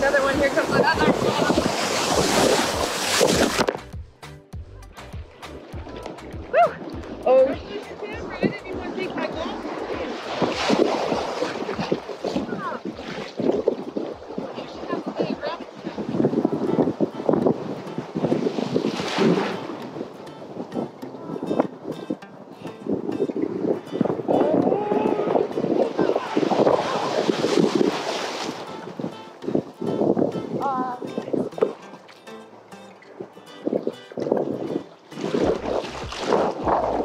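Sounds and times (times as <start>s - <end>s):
ocean surf breaking: 0.0s - 3.8s, 5.4s - 37.0s
wave crashing over camera: 0.0s - 3.8s, 7.7s - 15.2s, 17.6s - 19.8s, 24.5s - 28.7s, 35.2s - 37.0s
wind buffeting microphone: 0.0s - 4.0s, 5.0s - 37.0s.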